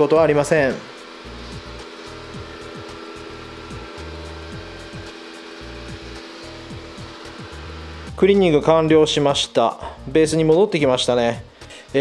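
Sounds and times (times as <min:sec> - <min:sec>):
robot vacuum whirring: 0:00.0 - 0:08.2
background music: 0:00.0 - 0:12.0.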